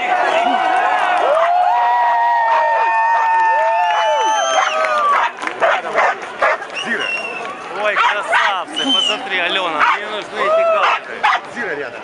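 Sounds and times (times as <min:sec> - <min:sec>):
crowd shouting: 0:00.0 - 0:05.4.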